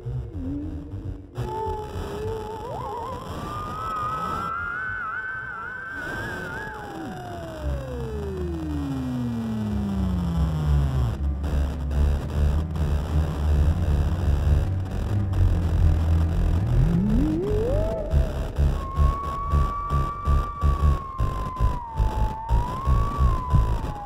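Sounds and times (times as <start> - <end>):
theremin gliding and wavering: 0.0 - 9.4, 15.8 - 24.0
low pulsing bass with beat: 10.2 - 24.0.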